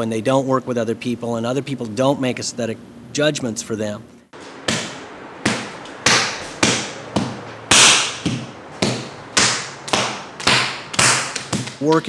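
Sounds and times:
sharp strikes: 0:04.4 - 0:11.8.

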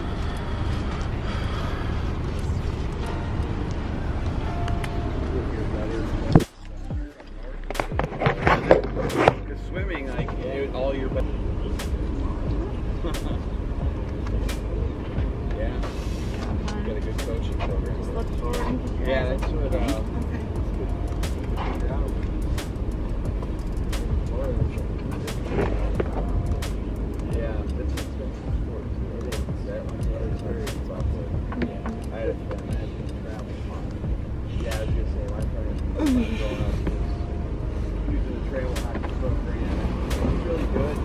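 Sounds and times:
muffled voices: 0:00.0 - 0:41.0
steady low rumble: 0:00.0 - 0:41.0
scattered clicks: 0:17.2 - 0:28.3, 0:29.2 - 0:35.9.

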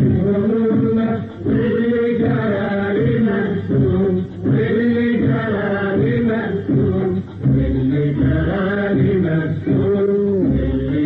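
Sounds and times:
muffled singing on old recording: 0:00.0 - 0:11.0.

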